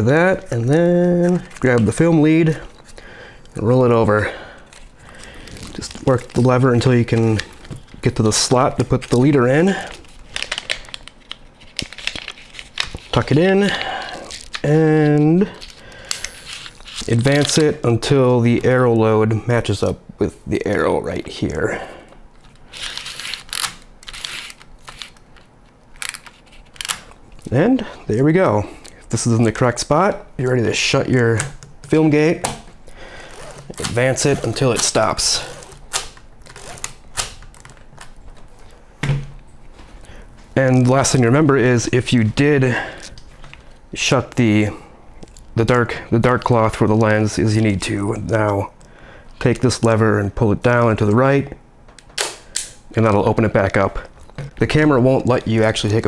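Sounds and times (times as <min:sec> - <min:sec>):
paper rustling and crinkling: 0:00.3 - 0:17.8, 0:22.4 - 0:27.2.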